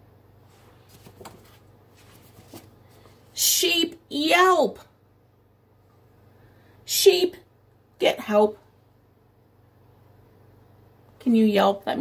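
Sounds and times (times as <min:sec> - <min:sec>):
low steady hum: 0:00.0 - 0:12.0
book page turning: 0:00.5 - 0:03.2.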